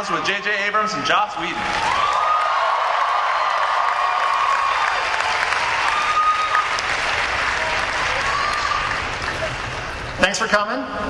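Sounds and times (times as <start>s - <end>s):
audience applauding: 1.4s - 10.2s
crowd calling out: 7.5s - 9.6s.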